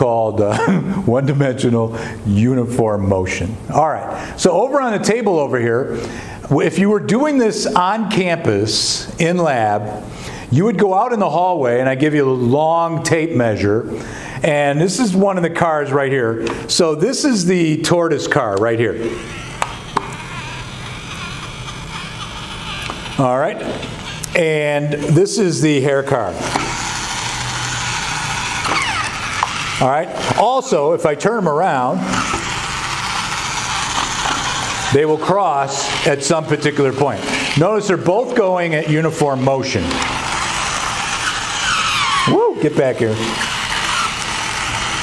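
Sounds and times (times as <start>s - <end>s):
toy car motor buzzing: 17.3s - 45.0s.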